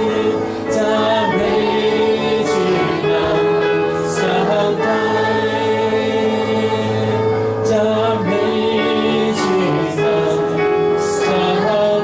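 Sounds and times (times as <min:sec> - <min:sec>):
electronic keyboard: 0:00.0 - 0:12.0
voices singing: 0:00.0 - 0:12.0.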